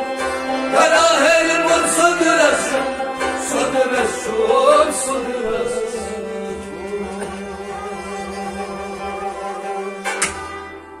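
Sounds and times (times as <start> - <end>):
bowed string instrument: 0.0 - 11.0
harmonium reed tones: 0.0 - 11.0
plucked lutes: 0.0 - 11.0.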